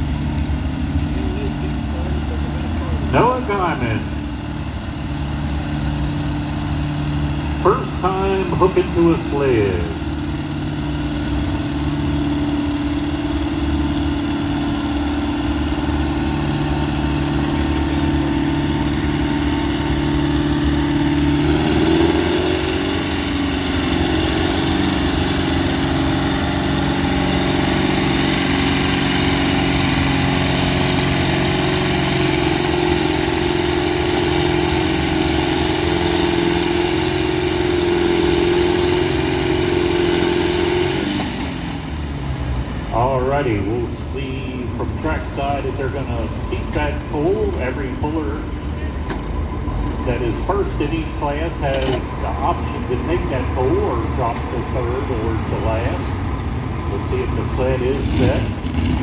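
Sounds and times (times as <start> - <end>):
tractor engine working hard: 0.0 - 59.0.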